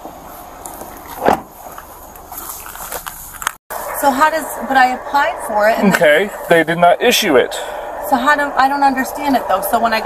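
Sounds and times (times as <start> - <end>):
car door thump: 1.2 - 1.5.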